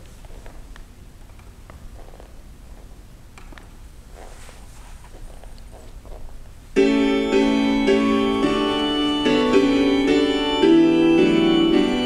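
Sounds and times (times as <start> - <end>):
faint rustles: 4.0 - 6.7.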